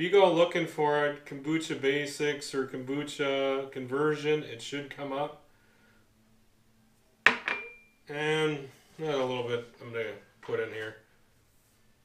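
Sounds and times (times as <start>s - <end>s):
glass knocking on countertop: 7.3s - 7.8s
glass ringing tone: 7.3s - 8.0s.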